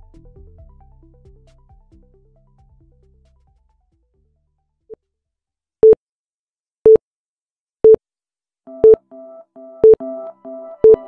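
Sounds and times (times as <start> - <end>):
countdown timer beeping: 8.7 - 9.0, 9.8 - 10.0
soft synth keyboard music: 8.7 - 11.0.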